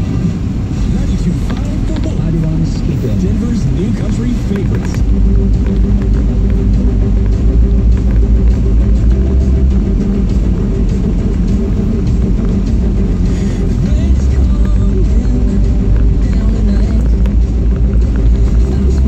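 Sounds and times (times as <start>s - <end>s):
voices on radio: 0.0s - 6.2s, 13.5s - 19.0s
car radio music: 0.0s - 19.0s
car road and engine rumble: 0.0s - 19.0s.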